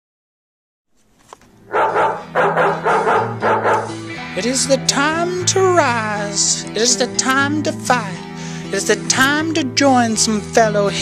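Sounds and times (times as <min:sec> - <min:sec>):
music with low bass: 0:01.6 - 0:11.0
dog barking: 0:01.7 - 0:04.0.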